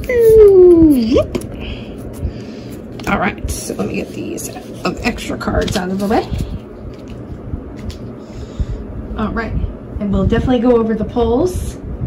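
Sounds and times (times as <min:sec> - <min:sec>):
cards sliding rustle: 0:04.6 - 0:08.1.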